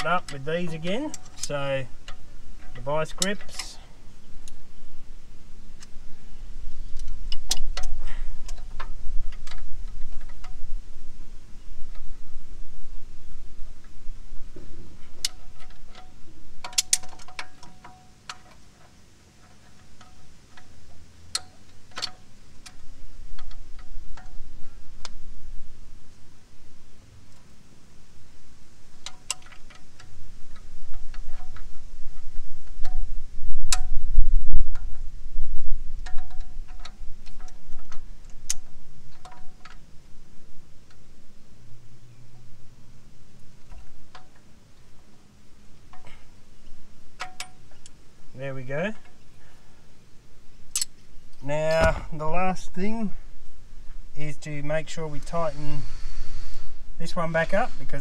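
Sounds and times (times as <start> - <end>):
low rumble: 30.0 - 39.2.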